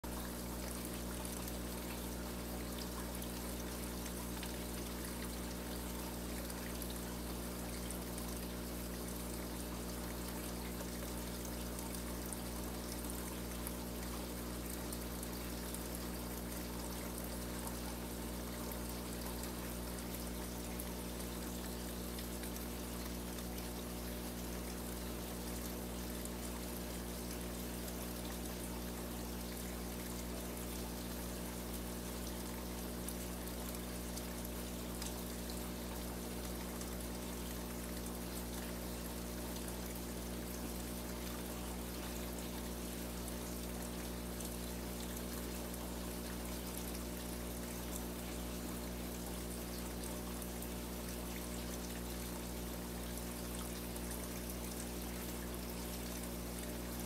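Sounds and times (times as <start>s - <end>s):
water trickling from filter: 0.1s - 57.0s.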